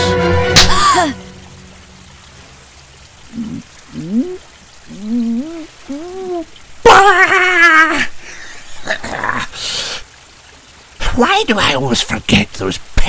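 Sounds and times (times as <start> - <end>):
cartoon character groans: 3.3 - 8.1.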